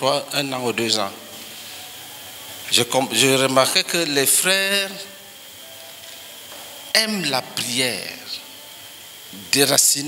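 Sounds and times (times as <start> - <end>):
high-pitched whine: 0.0 - 10.0
room tone hiss: 0.0 - 10.0
man speaking: 7.0 - 8.4.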